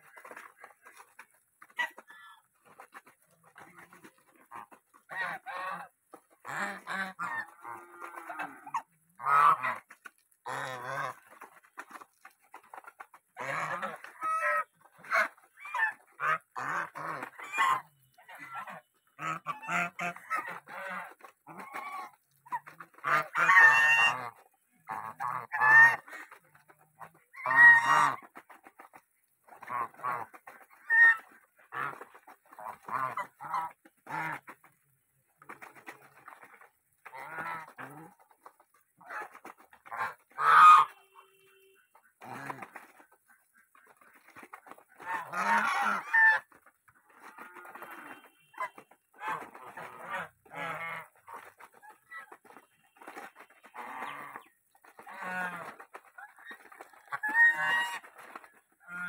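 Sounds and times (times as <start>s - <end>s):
geese honking: 0.0s - 34.8s, 35.4s - 59.0s.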